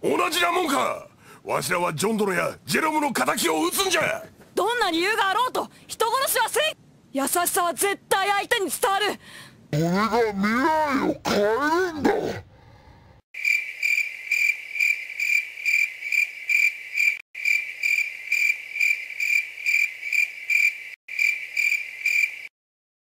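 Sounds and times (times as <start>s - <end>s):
crickets chirping: 13.4s - 22.5s.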